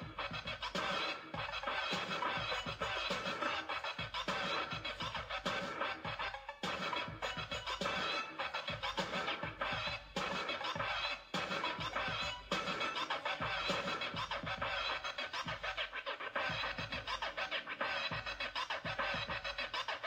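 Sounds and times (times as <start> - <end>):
electronic music: 0.0 - 20.0
turntable scratching: 0.0 - 20.0.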